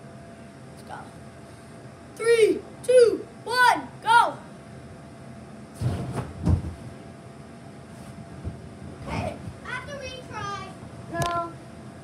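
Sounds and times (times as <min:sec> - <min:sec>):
dull thumps on bounce house: 0:05.8 - 0:06.9.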